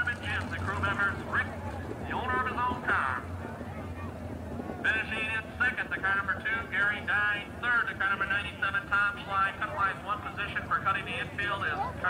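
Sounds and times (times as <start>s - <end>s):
man talking indistinctly: 0.0s - 3.3s, 4.8s - 12.0s.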